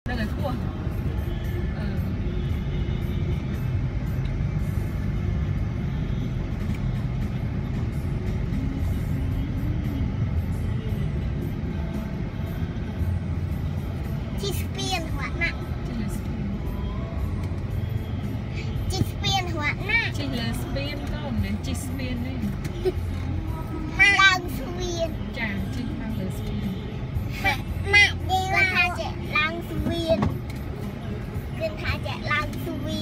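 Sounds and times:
car engine and tyres rumble: 0:00.0 - 0:33.0.

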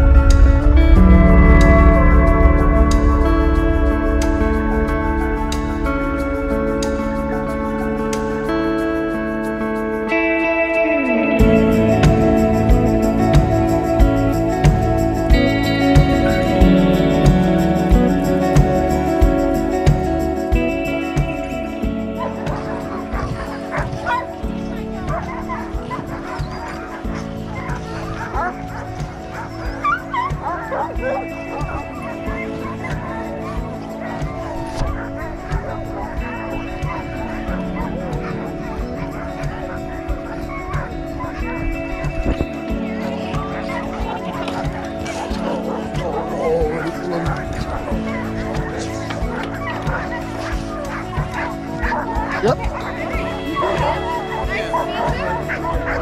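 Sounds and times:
background music: 0:00.0 - 0:56.0
dogs barking and yelping: 0:00.0 - 0:56.0.

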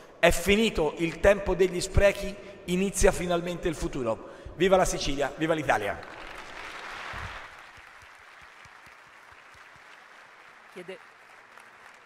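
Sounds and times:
audience applause: 0:05.9 - 0:12.0.

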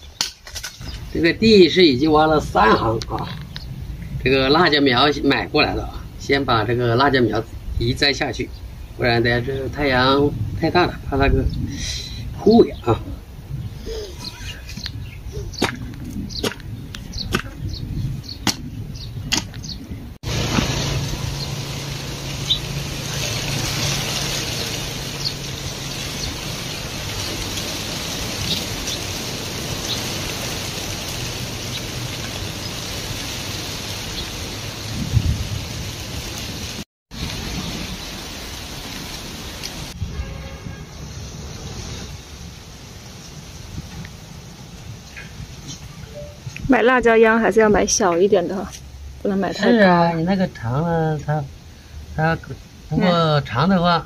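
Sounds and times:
hoe chopping into damp soil: 0:15.6 - 0:16.6.

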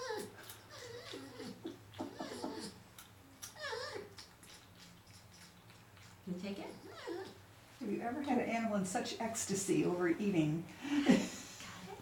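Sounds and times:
porcupine chewing clicks: 0:02.9 - 0:06.3.

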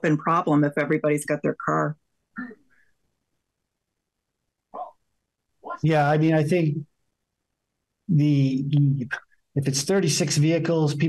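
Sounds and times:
man uttering short syllable: 0:05.8 - 0:06.8, 0:08.1 - 0:09.8.

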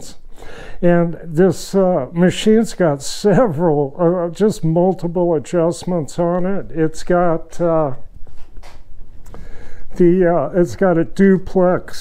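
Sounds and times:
rustling and handling noises: 0:08.0 - 0:10.1.

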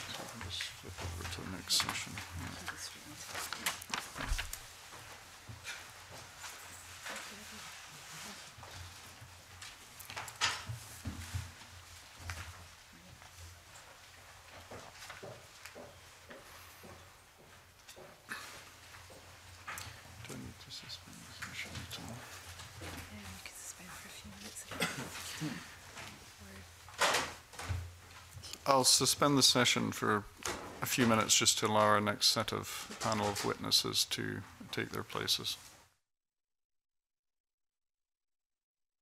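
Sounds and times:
papers rustling: 0:00.0 - 0:15.8, 0:18.4 - 0:23.7, 0:32.6 - 0:33.8.

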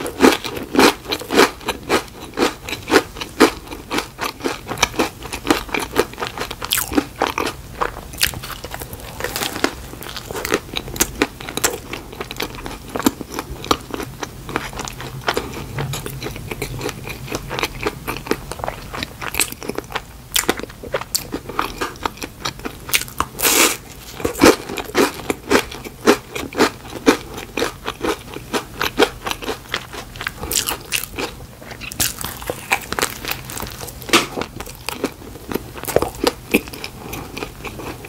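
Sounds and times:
person chewing: 0:00.0 - 0:38.0.

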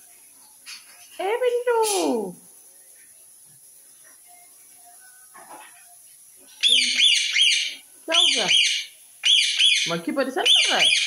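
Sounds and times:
parakeet shrill calls: 0:06.6 - 0:11.0.

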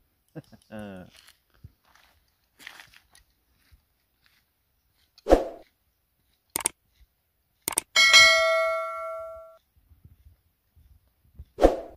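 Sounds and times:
button clicks: 0:07.7 - 0:07.9
notification bell ding: 0:08.0 - 0:09.6.

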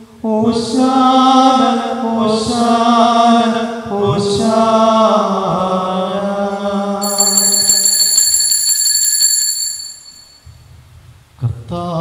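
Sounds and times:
small bell shaken rapidly: 0:07.0 - 0:10.4.

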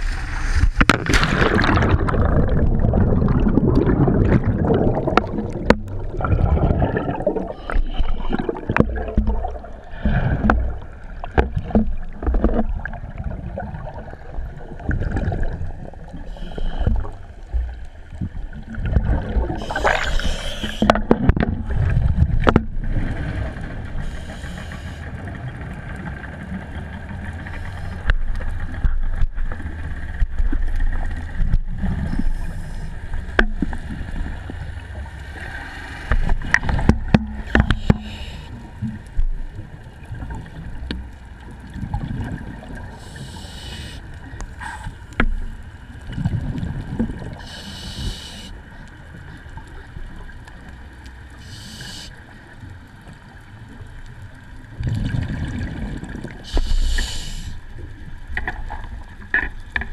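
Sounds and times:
water noise: 0:00.0 - 0:59.9.

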